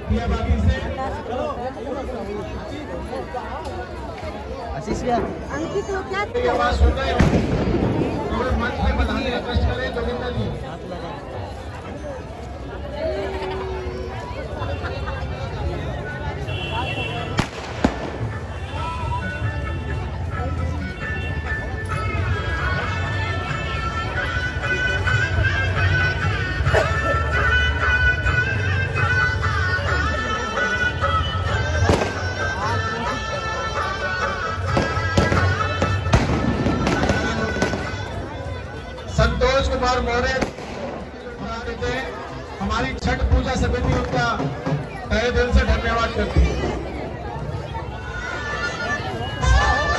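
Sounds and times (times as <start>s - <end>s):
crowd chatter: 0.0s - 49.9s
firecracker bangs: 7.1s - 8.5s, 17.3s - 18.8s, 31.9s - 32.3s, 34.7s - 38.1s, 40.4s - 41.0s
music: 17.4s - 41.6s, 42.2s - 49.9s.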